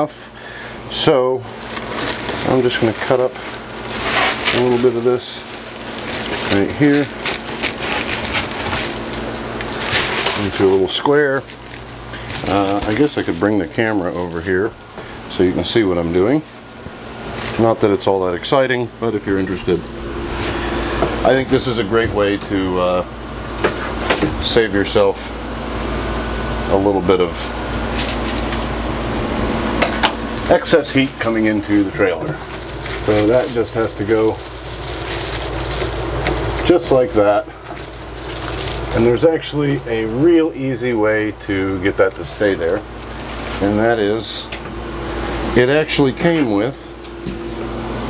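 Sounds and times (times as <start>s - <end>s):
air conditioner running: 0.0s - 48.0s
steady low hum: 0.0s - 48.0s
foil sheet crinkling: 1.0s - 16.7s, 27.6s - 44.4s.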